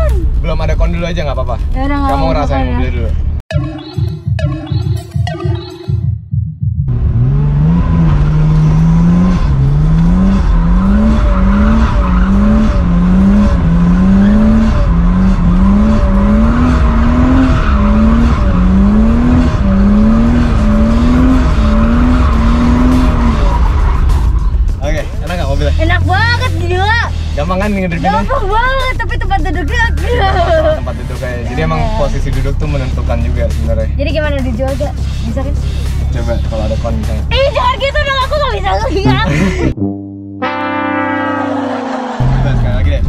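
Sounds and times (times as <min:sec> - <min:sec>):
car engine revving: 0:06.9 - 0:43.0.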